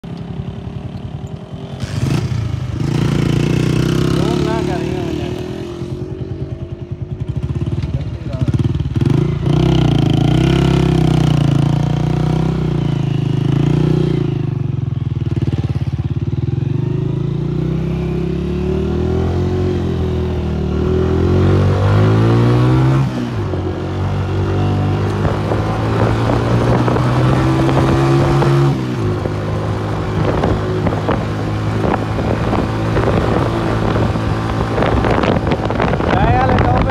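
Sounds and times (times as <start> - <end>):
motorcycle engine running: 0.0 - 36.9.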